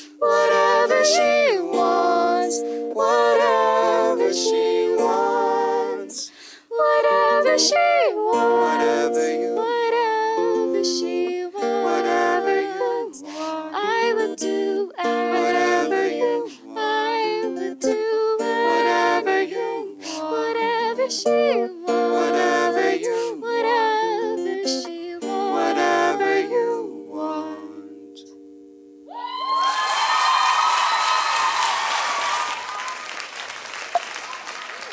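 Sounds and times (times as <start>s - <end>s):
two voices singing in harmony: 0.0s - 28.3s
acoustic guitar: 0.0s - 29.1s.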